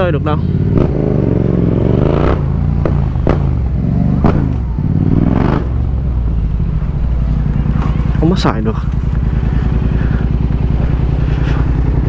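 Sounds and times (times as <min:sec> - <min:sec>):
motorcycle engine revving: 0:00.0 - 0:12.0.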